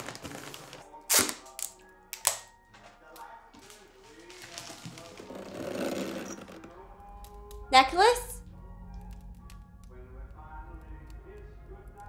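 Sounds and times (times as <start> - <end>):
loud paper crackle: 0.0 - 1.7, 3.6 - 6.7
wrapping paper crinkling: 0.0 - 1.7, 3.6 - 6.7
soft background music: 0.0 - 12.0.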